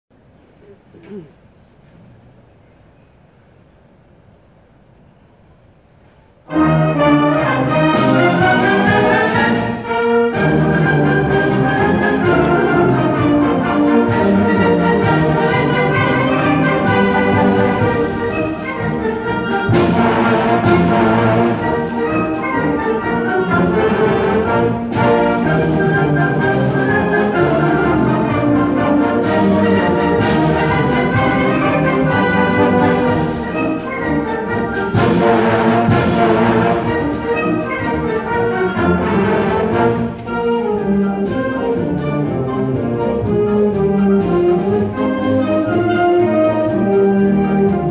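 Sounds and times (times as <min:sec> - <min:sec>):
concert band playing: 0:06.5 - 0:47.9.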